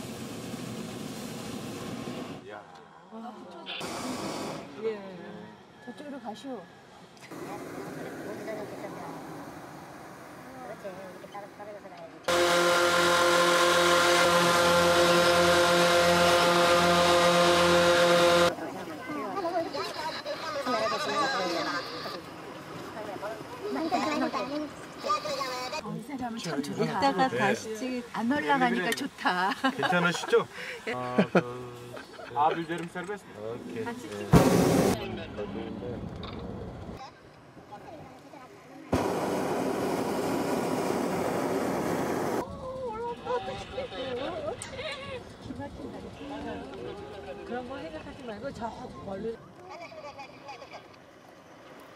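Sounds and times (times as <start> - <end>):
balloon burner roaring: 3.8 - 4.8, 12.3 - 18.5, 34.3 - 35.0, 39.0 - 42.4
inflator fan droning hum: 12.3 - 18.5.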